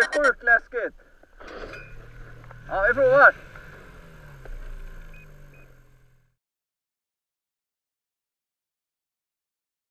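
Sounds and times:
short high beeps: 0.0 - 0.4
snowmobile engine idling: 1.0 - 6.4.

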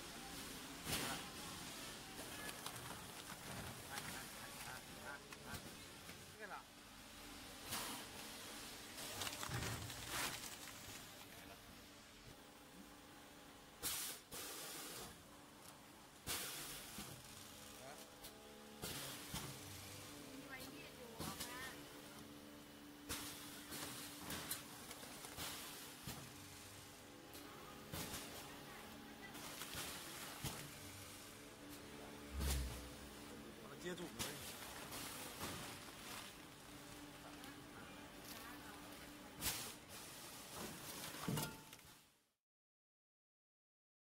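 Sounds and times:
short hissing bursts: 13.8 - 15.1.

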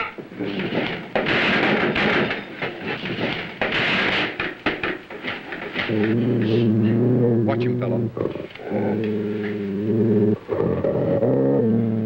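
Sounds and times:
sharp knocks: 0.0 - 6.0
men scuffling and grappling: 0.0 - 6.9.

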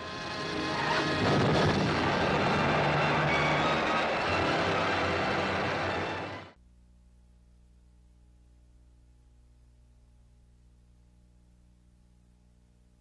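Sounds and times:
loud blasting rumble: 0.1 - 6.3.

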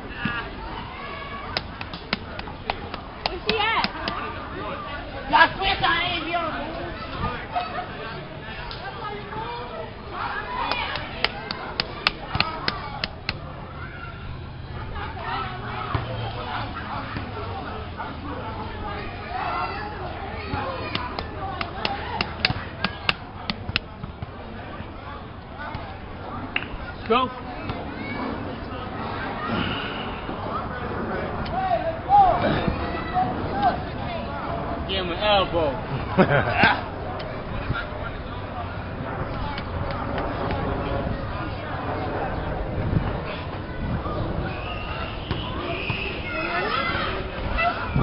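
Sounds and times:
background chatter of people: 0.0 - 48.0
outdoor noise: 0.0 - 48.0
voices: 0.0 - 48.0.

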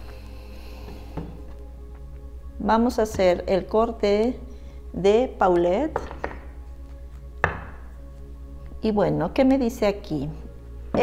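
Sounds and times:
soft background music: 0.0 - 11.0
card tapping on tabletop: 6.0 - 6.5.

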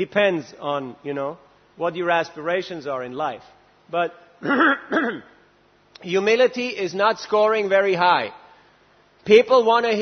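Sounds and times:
man clearing his throat: 4.4 - 5.4.

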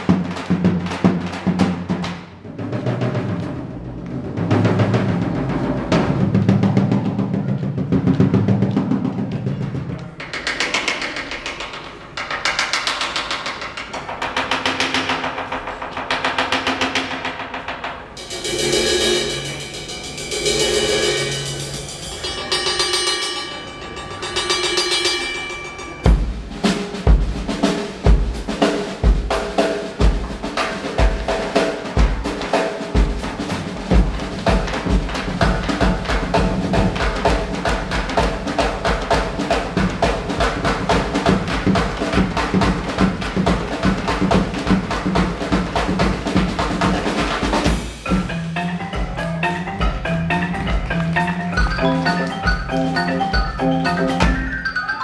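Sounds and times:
drum rolls: 0.0 - 55.0
marimbas and vibraphones: 18.3 - 26.3, 47.6 - 55.0.

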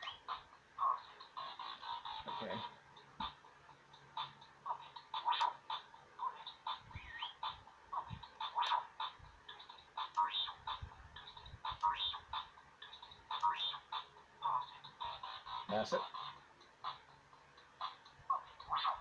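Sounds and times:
robot toy beeps and chirps: 0.0 - 2.7, 4.2 - 17.0, 17.8 - 19.0.

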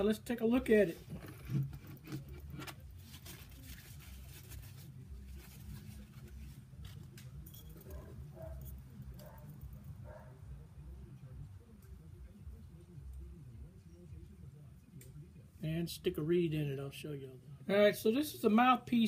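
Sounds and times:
low room hum: 0.0 - 18.4.

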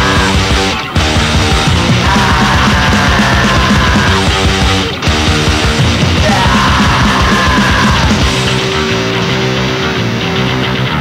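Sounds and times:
punk rock guitar and bass: 0.0 - 11.0.

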